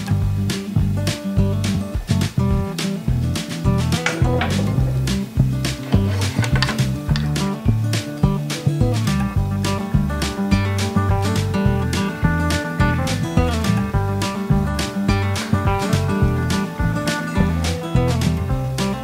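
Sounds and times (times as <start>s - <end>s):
instrumental music with beat: 0.0s - 19.0s.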